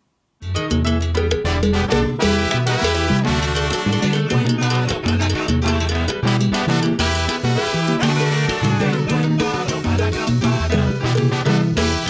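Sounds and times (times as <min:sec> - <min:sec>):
bass line: 0:00.4 - 0:12.0
steady percussion: 0:00.4 - 0:12.0
trombone lines: 0:01.4 - 0:12.0.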